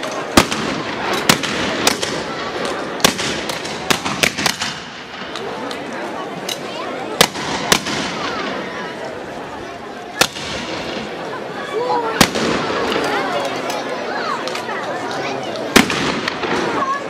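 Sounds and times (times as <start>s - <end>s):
street crowd chatter: 0.0s - 17.0s
shotgun blasts: 0.4s - 2.3s, 3.0s - 5.3s, 7.2s - 8.4s, 10.2s - 11.1s, 12.2s - 12.8s, 15.8s - 16.8s.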